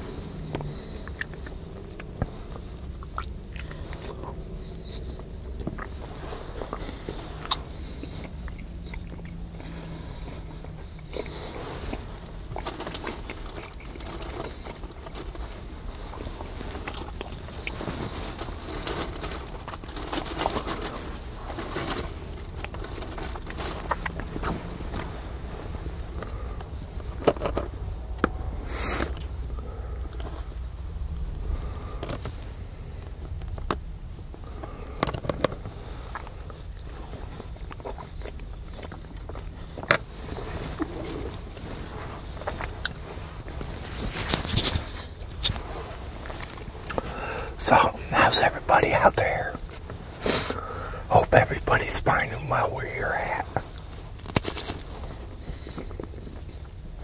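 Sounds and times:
close chewing and biting: 0:00.0 - 0:47.9, 0:51.7 - 0:57.0
steady low rumble: 0:00.0 - 0:57.0.

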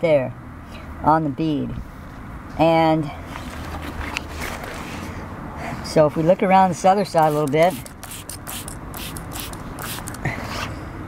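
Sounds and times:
spray bottle squirting: 0:07.1 - 0:10.3.

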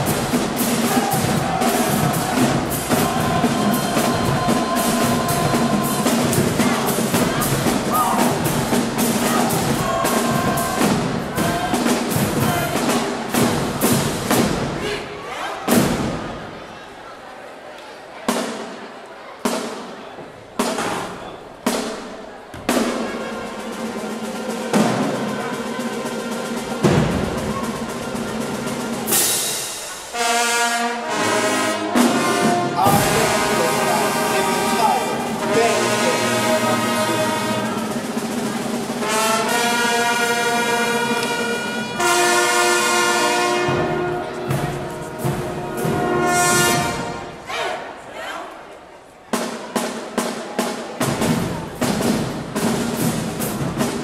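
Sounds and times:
brass section long chords: 0:00.0 - 0:15.1, 0:23.0 - 0:47.6
marching band percussion hits: 0:00.0 - 0:15.1, 0:15.7 - 0:16.5, 0:20.5 - 0:47.6, 0:49.3 - 0:54.0.

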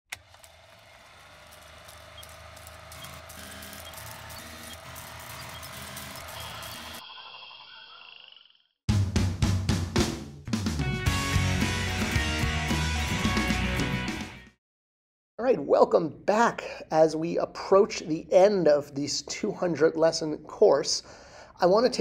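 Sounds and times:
clicks and crackle: 0:00.1 - 0:07.0
drum-led music: 0:08.9 - 0:14.5.

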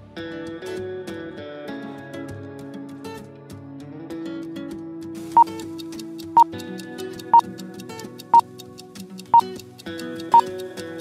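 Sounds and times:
background music: 0:00.0 - 0:11.0
countdown timer ticks: 0:05.3 - 0:11.0.

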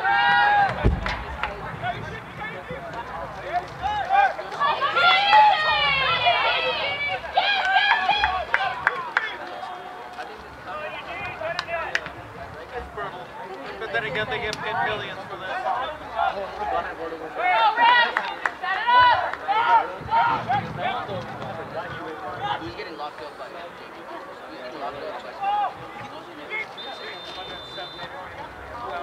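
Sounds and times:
crowd shouting and calling out: 0:00.0 - 0:29.0
thump: 0:00.7 - 0:01.6.

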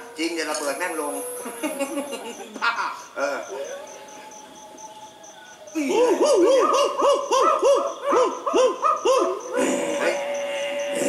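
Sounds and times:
dog-like barks or yelps: 0:06.1 - 0:09.6.

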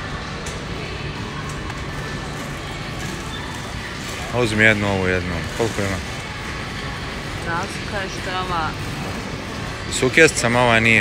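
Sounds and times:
supermarket background hum: 0:00.0 - 0:11.0.

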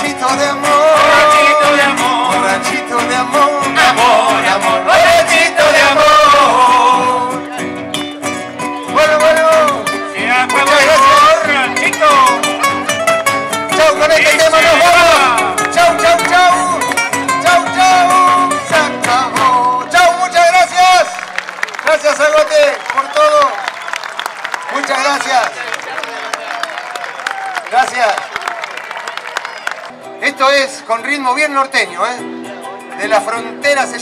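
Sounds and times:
voices singing a melody: 0:00.0 - 0:07.5
acoustic guitars: 0:00.0 - 0:21.4, 0:29.9 - 0:34.0.

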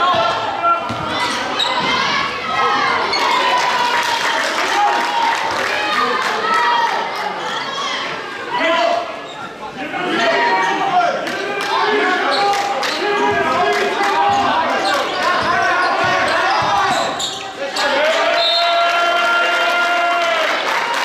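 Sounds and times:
crowd shouting and chatter: 0:00.0 - 0:21.0.

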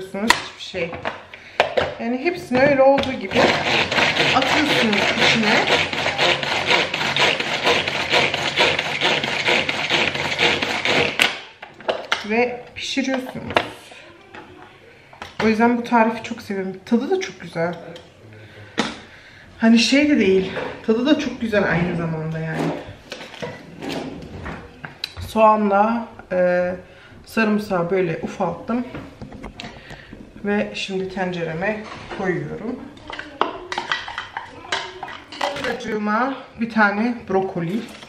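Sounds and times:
food chopper rasping strokes: 0:03.2 - 0:11.3.

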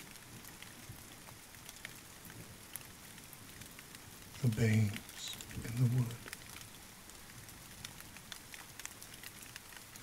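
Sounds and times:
raindrop ticks: 0:00.0 - 0:10.0
steady rain hiss: 0:00.0 - 0:10.0.

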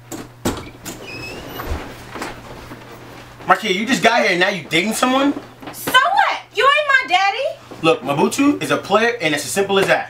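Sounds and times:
door hinge squeaks: 0:00.6 - 0:02.0.

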